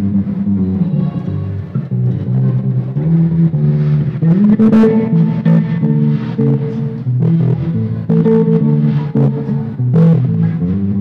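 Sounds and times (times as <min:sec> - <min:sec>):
electric bass guitar: 0:00.0 - 0:11.0.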